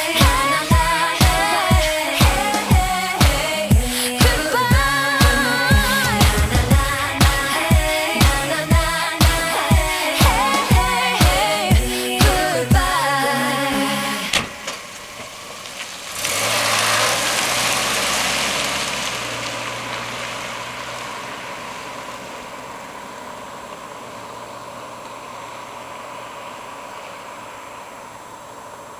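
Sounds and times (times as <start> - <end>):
car engine revving and driving off: 12.9 - 28.9.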